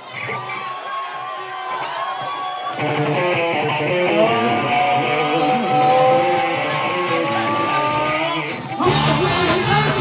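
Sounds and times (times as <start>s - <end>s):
distorted electric guitar lead: 2.7s - 10.0s
full band playing: 2.7s - 10.0s.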